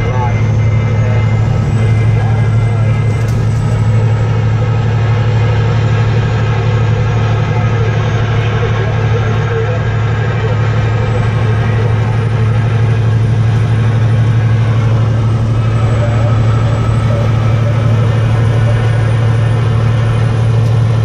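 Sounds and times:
car engine and road drone: 0.0 - 21.0.

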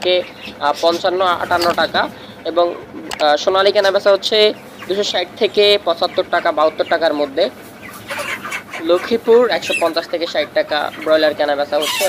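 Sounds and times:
man speaking: 0.0 - 7.6, 8.8 - 12.0
chickens clucking: 0.0 - 12.0.

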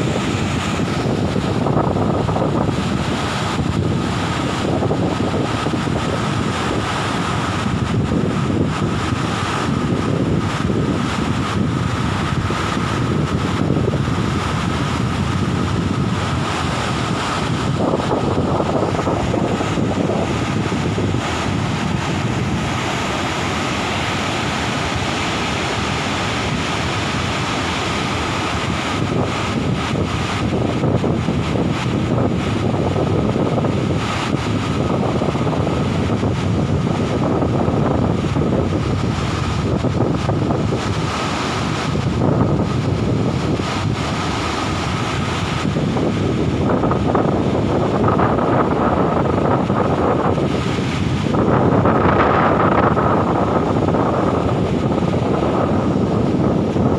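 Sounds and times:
waterfall rushing: 0.0 - 56.9
wind buffeting microphone: 0.0 - 56.9.

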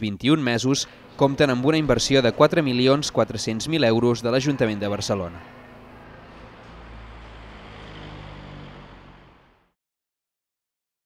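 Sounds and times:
traffic rumble: 0.5 - 9.7.

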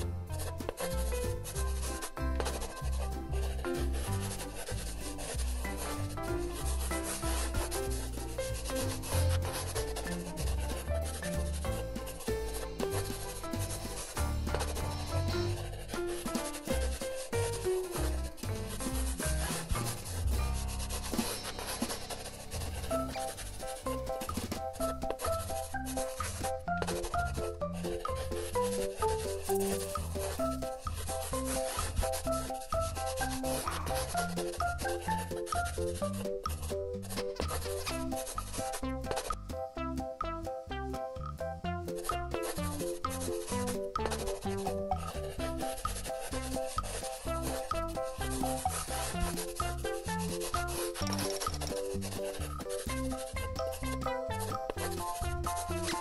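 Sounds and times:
paintbrush stroking across paper: 0.0 - 39.4, 41.9 - 56.0
background music with bass line: 0.0 - 56.0.

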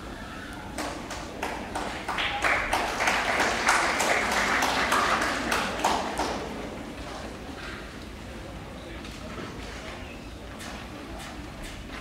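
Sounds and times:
audience applauding: 0.8 - 6.6.

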